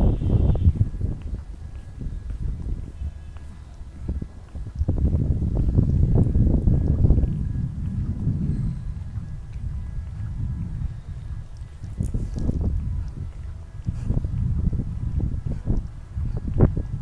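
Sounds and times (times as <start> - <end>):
footsteps on paving: 0.0 - 17.0
wind buffeting microphone: 0.0 - 17.0.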